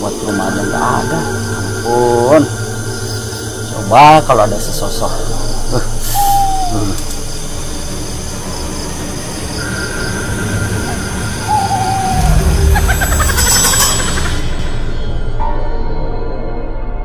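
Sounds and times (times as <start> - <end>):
deep rumble: 0.0 - 17.0
eerie low drone: 0.0 - 17.0
owl hoot: 5.6 - 7.4, 9.6 - 14.5.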